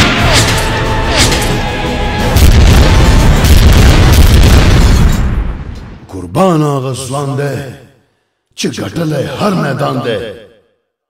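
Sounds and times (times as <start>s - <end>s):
trailer music: 0.0s - 6.1s
explosion boom with low rumble: 2.3s - 6.0s.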